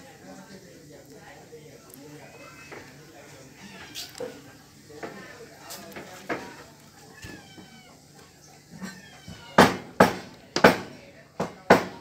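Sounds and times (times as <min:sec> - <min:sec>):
sharp knocks: 0:09.6 - 0:12.0.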